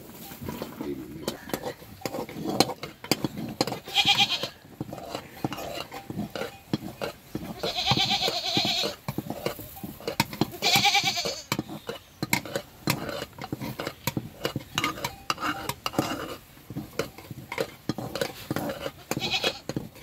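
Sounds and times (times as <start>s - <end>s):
stick stirring porridge in metal pot: 0.0s - 20.0s
sheep bleating: 3.8s - 4.6s, 7.5s - 9.0s, 10.6s - 11.5s, 19.1s - 19.6s.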